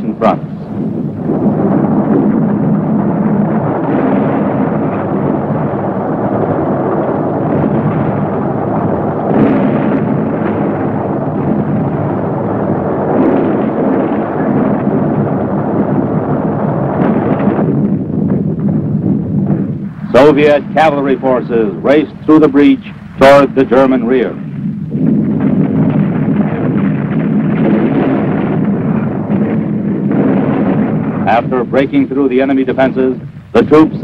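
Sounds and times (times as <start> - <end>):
battle rumble with explosions: 0.0 - 34.0.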